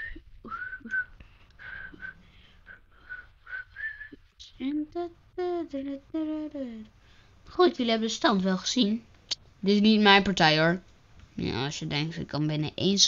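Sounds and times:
person whistling a tune: 0.0 - 2.2, 3.0 - 4.2.

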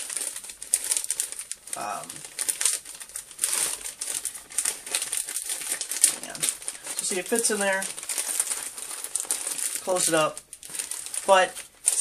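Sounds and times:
plastic mailer crinkling: 0.0 - 12.0.

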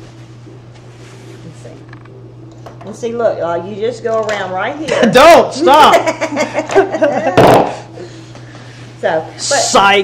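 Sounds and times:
people laughing: 5.9 - 7.6.

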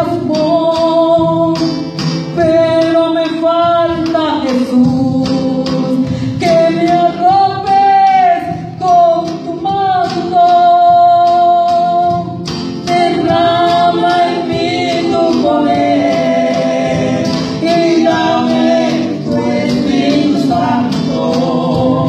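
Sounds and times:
church band with drums: 0.0 - 22.0
group singing praise song: 5.1 - 8.7, 10.1 - 22.0.

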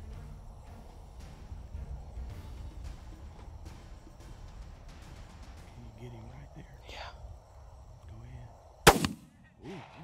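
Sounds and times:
faint night background: 0.0 - 10.0
rifle shot: 8.8 - 10.0.

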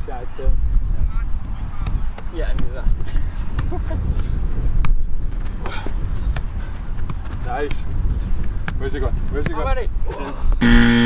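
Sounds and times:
wind noise on microphone: 0.0 - 10.7.

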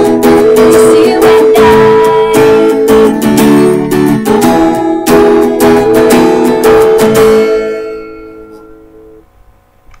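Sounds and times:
acoustic guitar chord ringing: 0.0 - 9.7.

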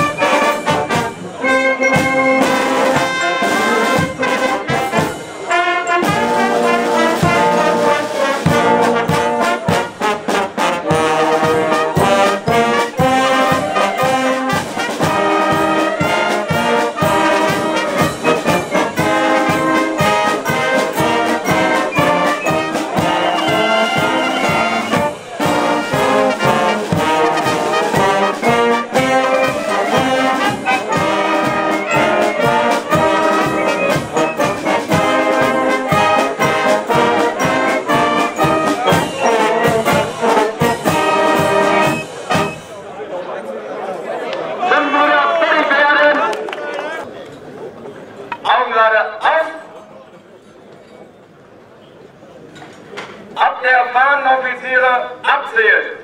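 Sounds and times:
brass band playing a march: 0.0 - 42.9
people's voices: 0.0 - 56.0.

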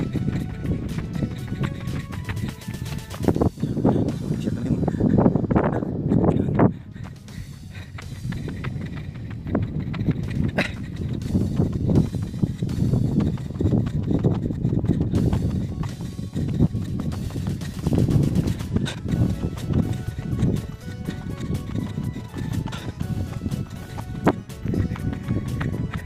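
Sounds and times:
running footsteps on dirt: 0.0 - 26.0.

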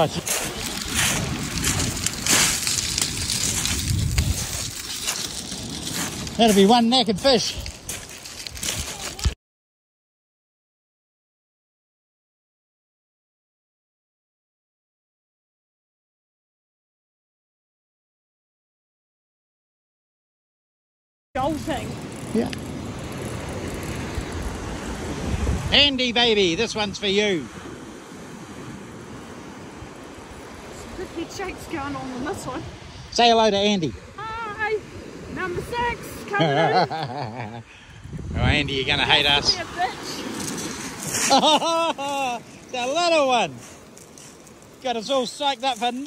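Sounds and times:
wind on microphone: 0.0 - 6.4, 21.4 - 26.9, 33.9 - 41.4
surf breaking on shingle: 0.0 - 9.4, 39.0 - 46.0
surf washing on shingle: 0.0 - 9.4, 21.4 - 46.0.

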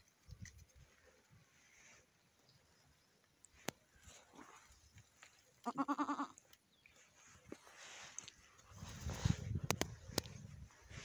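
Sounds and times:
goat bleating: 5.6 - 6.4.

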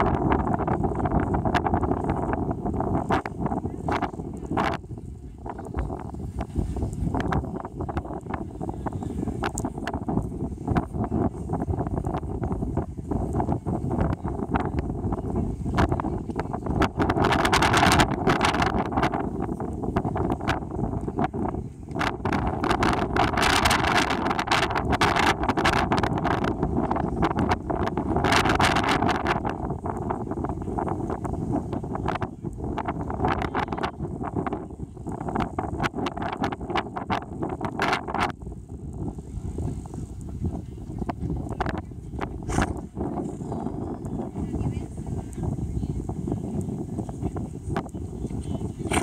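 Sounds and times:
wind buffeting microphone: 0.0 - 49.0.

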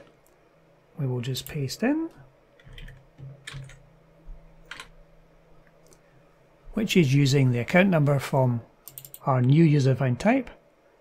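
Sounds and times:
faint low hum: 0.0 - 11.0
computer keyboard keystrokes: 2.6 - 3.8, 4.6 - 4.9, 8.9 - 9.2.

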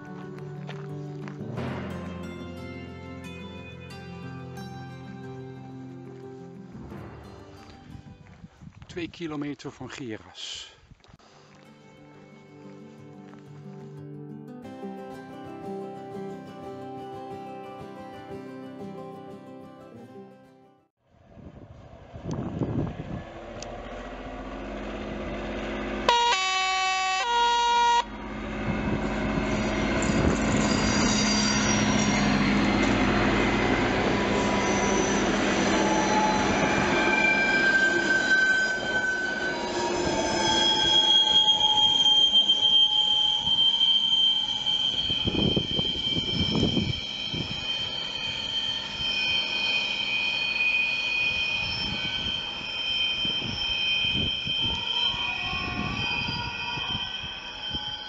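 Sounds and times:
train rumbling past: 5.3 - 8.7, 21.2 - 26.3, 27.2 - 58.0
high wheel squeal: 22.6 - 58.0
train horn blast: 26.1 - 31.8.

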